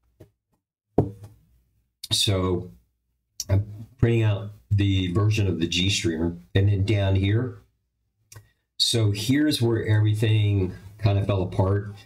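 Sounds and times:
can knocking on a desk: 1.0s - 1.3s.

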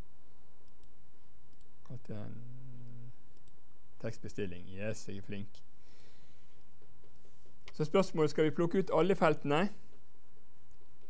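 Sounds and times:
computer mouse clicks: 0.6s - 1.7s, 3.3s - 3.6s.

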